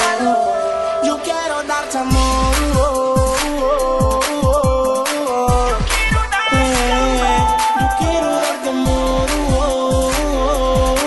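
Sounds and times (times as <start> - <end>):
synth melody with pitch bends: 0.0 - 4.2
steady beat: 1.3 - 11.0
deep sliding bass hits: 2.1 - 4.0.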